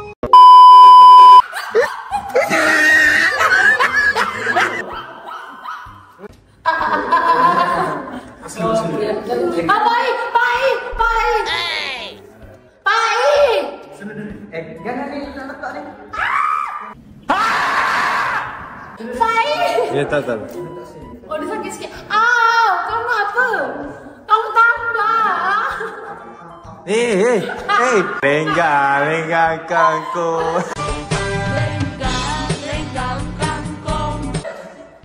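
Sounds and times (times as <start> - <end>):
test-tone beep: 0.2 - 1.4
people laughing and shrieking: 1.4 - 8.1, 16.1 - 19.0, 29.8 - 30.8.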